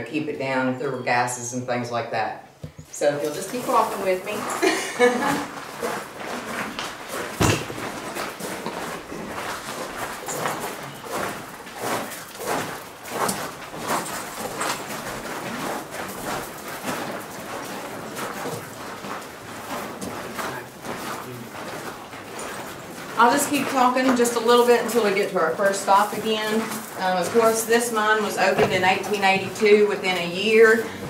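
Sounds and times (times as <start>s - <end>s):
footsteps on gravel: 3.2s - 31.0s.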